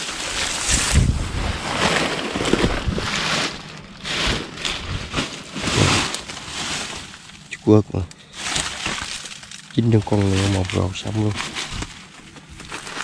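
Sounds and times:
dry leaves rustling and crackling: 0:00.0 - 0:13.0.

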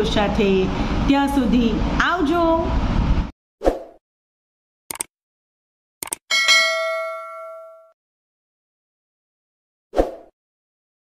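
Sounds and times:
bright notification bell ding: 0:06.3 - 0:08.0.

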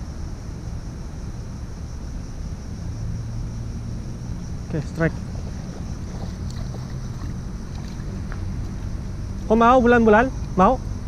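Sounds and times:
wind buffeting microphone: 0:03.7 - 0:09.9.

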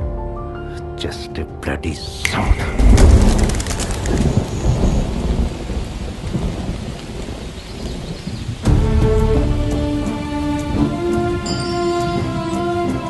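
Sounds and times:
music with sustained notes: 0:00.0 - 0:02.8, 0:08.5 - 0:13.0
thunder rumbling: 0:02.2 - 0:12.6
rain falling: 0:02.2 - 0:13.0.

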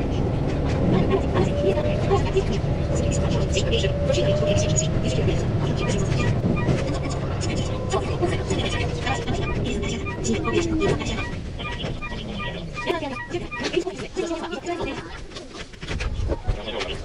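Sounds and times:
electric train running: 0:00.0 - 0:13.8
tone gliding downward: 0:00.7 - 0:13.9.

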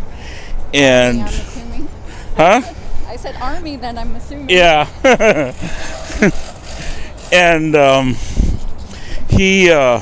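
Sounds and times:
outdoor background rumble: 0:00.0 - 0:10.0.

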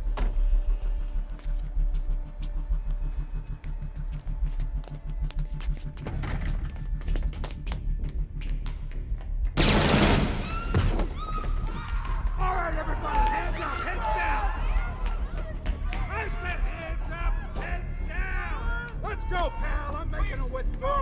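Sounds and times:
ticking pulsing film score: 0:00.0 - 0:10.7, 0:11.4 - 0:21.0
gunfire: 0:09.6 - 0:10.6
glass shattering: 0:09.6 - 0:11.1
people screaming: 0:10.4 - 0:20.0.

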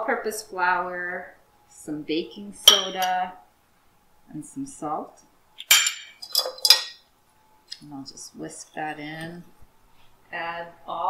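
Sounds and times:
metal utensils clinking on glass: 0:05.6 - 0:07.0.

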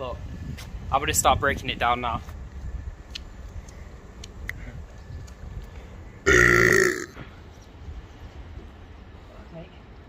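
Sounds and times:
man burping: 0:06.3 - 0:07.2.

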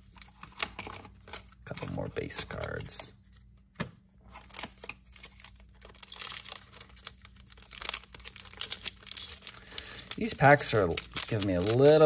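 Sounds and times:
foil wrapper crinkling and tearing: 0:04.3 - 0:12.0.

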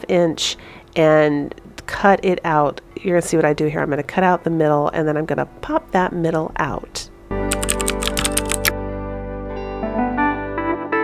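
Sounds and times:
guitar-like background music: 0:06.8 - 0:11.0
rapid sharp clicks: 0:07.5 - 0:08.7.

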